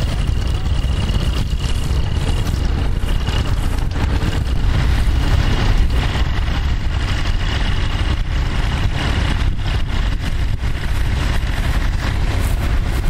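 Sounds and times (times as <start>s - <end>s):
tractor engine rumbling: 0.0s - 13.0s.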